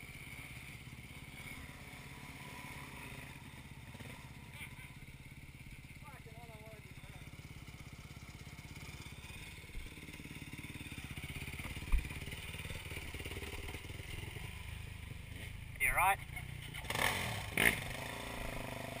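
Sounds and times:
dirt bike engines running: 0.0s - 19.0s.

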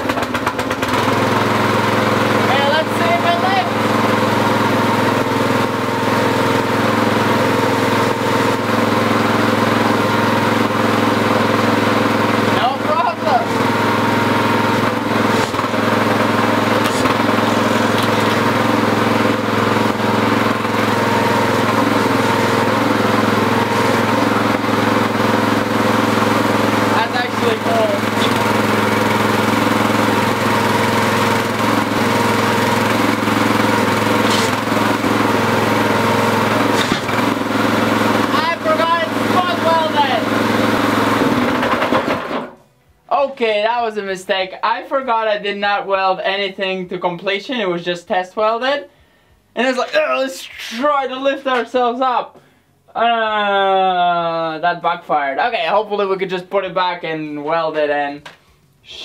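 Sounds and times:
small petrol engine running: 0.0s - 42.6s.

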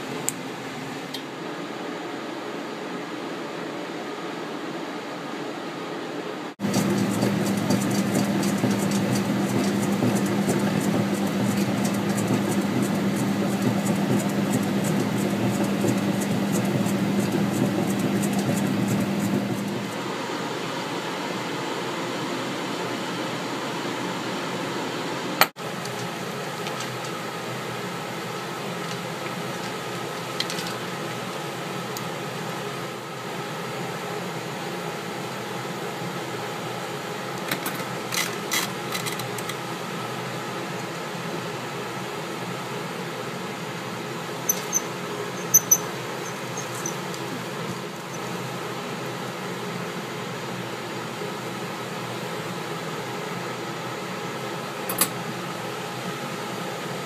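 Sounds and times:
film machine motor humming and ticking: 6.6s - 20.0s.

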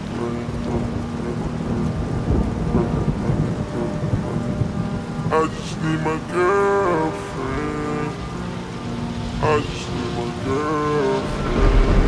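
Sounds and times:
slowed voice: 0.0s - 1.9s
low thunder rumbling: 0.0s - 8.2s, 10.4s - 12.0s
rain hiss: 0.0s - 12.0s.

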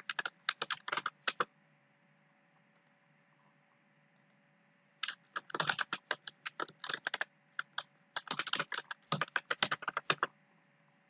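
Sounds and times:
computer keyboard typing: 0.0s - 1.5s, 5.0s - 10.3s.

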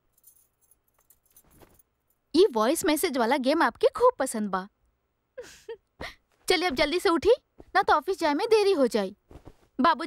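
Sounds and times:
glass bangles jingling: 0.0s - 2.3s
cloth rustling: 0.2s - 2.1s, 9.1s - 10.0s.

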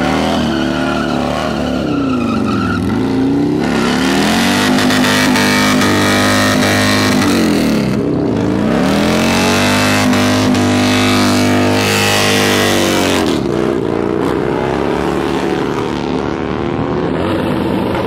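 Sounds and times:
motorcycle engine at high revs: 0.0s - 1.7s, 2.7s - 18.0s.

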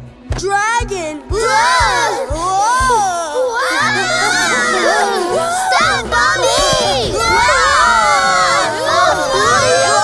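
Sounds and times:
cartoon voices screaming: 1.4s - 10.0s.

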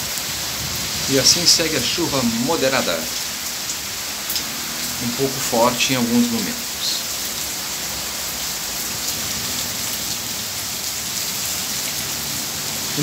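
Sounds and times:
heavy rain hissing: 0.0s - 13.0s.

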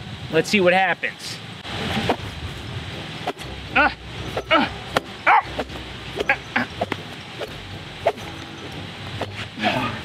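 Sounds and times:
man grunting: 3.7s - 5.4s.

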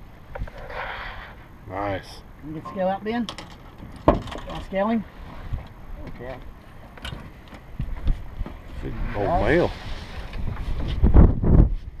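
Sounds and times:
wind buffeting microphone: 7.2s - 12.0s.

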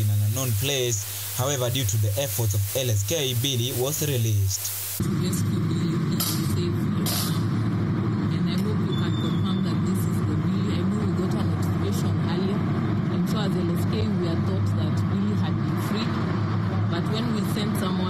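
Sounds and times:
vehicle engine rumble: 5.0s - 18.0s
woman talking: 5.0s - 18.0s.

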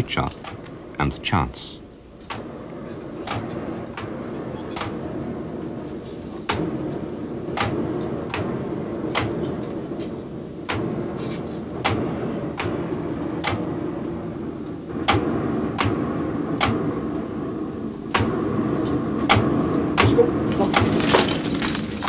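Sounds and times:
rush of air and flame: 0.0s - 1.1s, 1.8s - 22.0s.

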